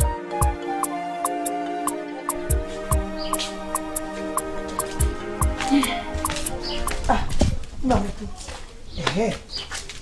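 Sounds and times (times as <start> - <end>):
background music with ticking beat: 0.0 - 7.1.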